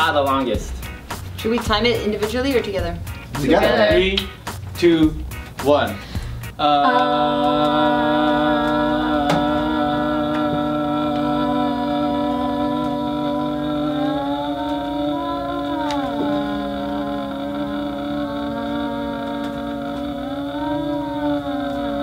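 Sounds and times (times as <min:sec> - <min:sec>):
people singing long ahhh: 0:06.6 - 0:22.0.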